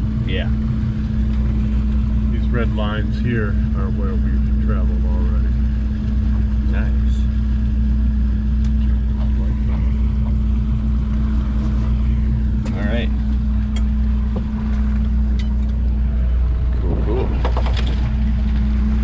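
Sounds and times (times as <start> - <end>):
boat engine running at low speed: 0.0 - 19.0.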